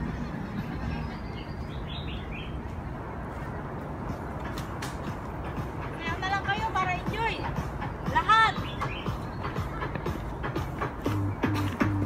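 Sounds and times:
bird chirp: 0.5 - 2.7, 8.0 - 10.2.

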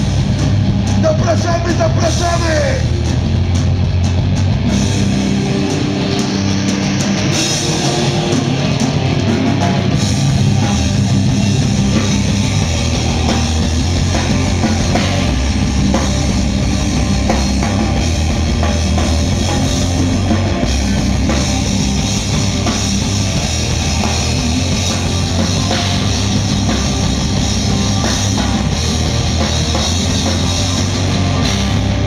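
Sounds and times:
bass guitar: 0.0 - 32.0
distorted electric guitars: 0.0 - 32.0
drum kit: 0.0 - 32.0.

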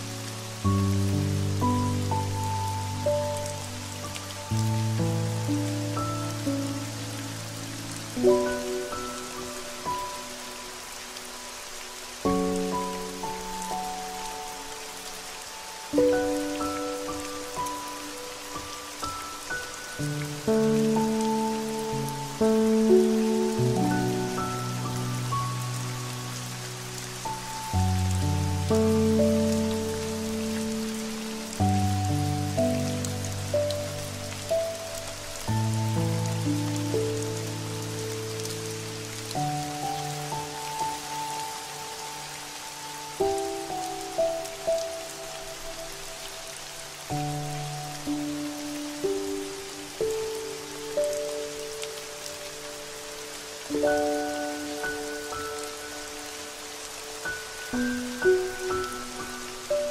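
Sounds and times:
slow calm music: 0.0 - 59.9
steady rain falling: 0.0 - 59.9.

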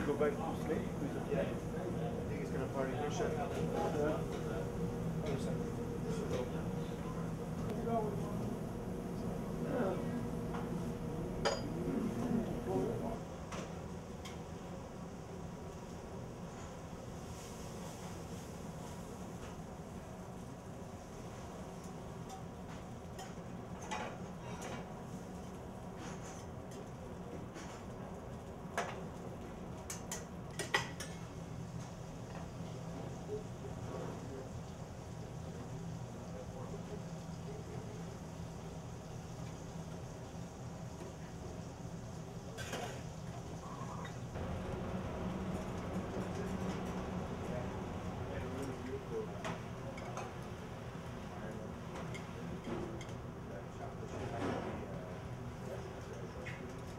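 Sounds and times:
steady low hum: 0.0 - 30.5, 31.1 - 56.4.

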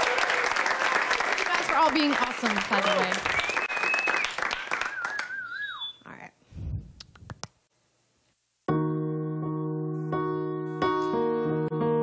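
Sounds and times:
audience applause: 0.0 - 5.9
person whistling: 3.4 - 6.0.

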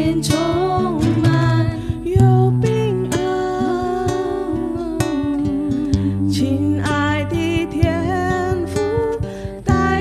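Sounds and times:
strummed acoustic guitar: 0.0 - 10.0
women singing: 0.0 - 10.0.

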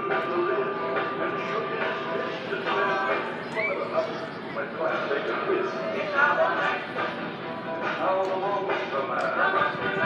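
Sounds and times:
music from loudspeaker: 0.0 - 10.0
voices: 0.1 - 7.1.

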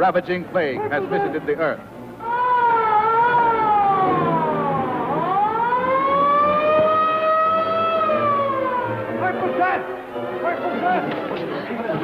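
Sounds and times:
siren wailing: 2.2 - 10.0.

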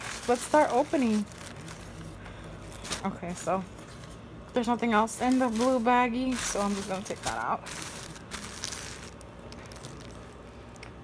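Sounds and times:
paper and plastic wrapping rustling: 0.0 - 11.0.

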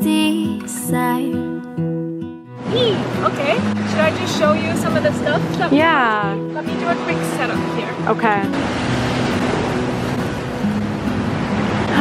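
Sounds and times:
wind: 2.1 - 12.0
waves on a rocky shore: 2.6 - 12.0.

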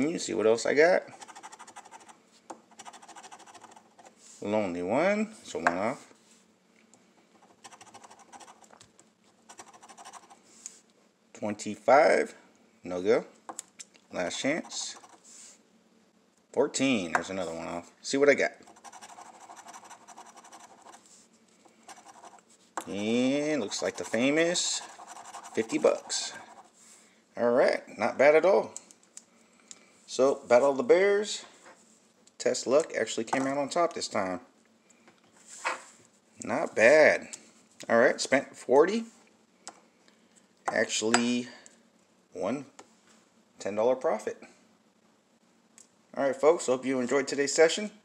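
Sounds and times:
coin scratching a ticket: 1.1 - 4.2, 7.4 - 8.7, 9.4 - 10.4, 14.5 - 15.2, 18.7 - 21.1, 21.9 - 22.4, 23.6 - 26.7.

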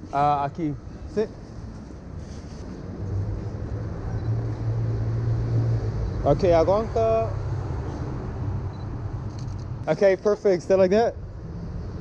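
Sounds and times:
vehicle engine passing: 2.8 - 9.9.

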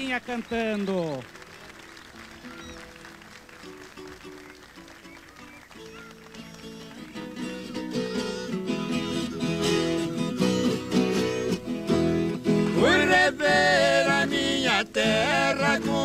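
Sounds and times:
acoustic guitar and viola playing: 1.4 - 16.0.

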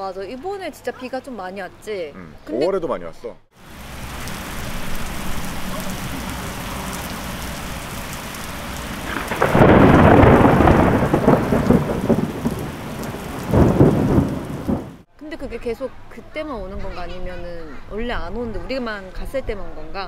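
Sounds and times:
heavy rain pouring: 3.6 - 15.1
thunder rolling: 4.0 - 15.0.

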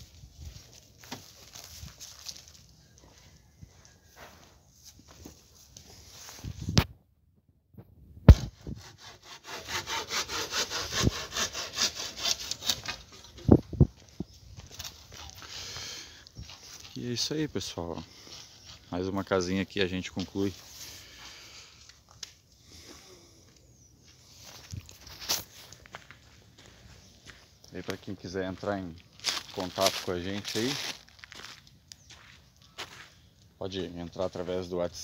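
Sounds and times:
footsteps: 0.1 - 6.7, 12.8 - 17.0, 24.0 - 33.2
hand saw rasping through wood: 8.3 - 13.2.

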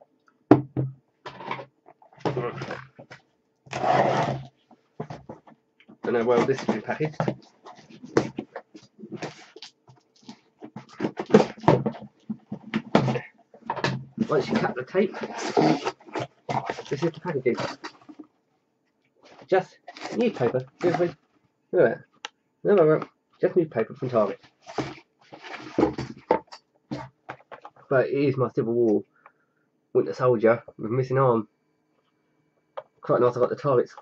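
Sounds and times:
newspaper rustling and crumpling: 19.3 - 21.1, 24.4 - 27.5.

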